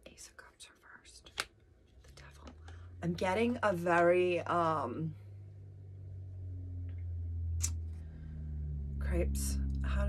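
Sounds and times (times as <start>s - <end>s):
steady low hum: 1.8s - 10.0s.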